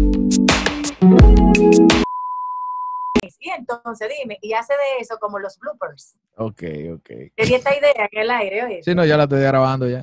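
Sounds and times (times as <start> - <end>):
steady test tone beep: 2.0 - 3.2.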